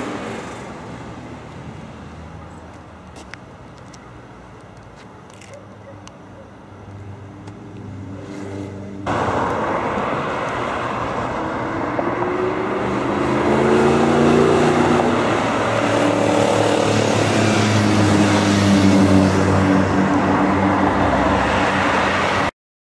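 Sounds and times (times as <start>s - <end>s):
tyre and road noise: 0.0s - 22.5s
car passing at speed: 7.0s - 22.5s
car engine accelerating: 7.6s - 22.1s.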